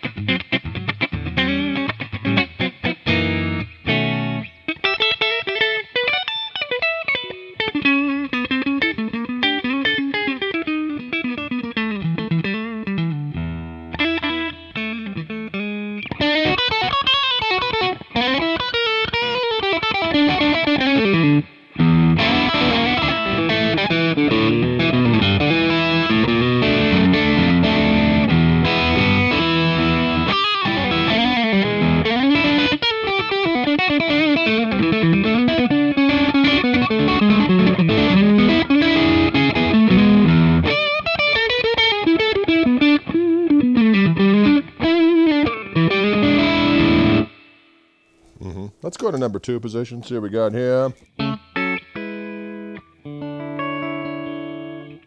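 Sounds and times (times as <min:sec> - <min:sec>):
electric guitar through amplifier: 0:00.0 - 0:47.7, 0:48.3 - 0:55.0.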